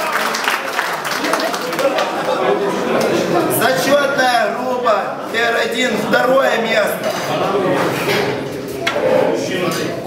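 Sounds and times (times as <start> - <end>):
men talking in reverberant hall: 0.0 - 10.0.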